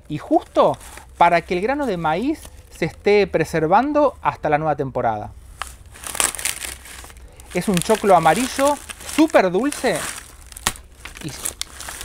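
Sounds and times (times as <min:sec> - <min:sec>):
corn husks rustling and crackling: 0:00.0 - 0:03.2, 0:05.5 - 0:12.0
husks snapping: 0:05.6 - 0:12.0.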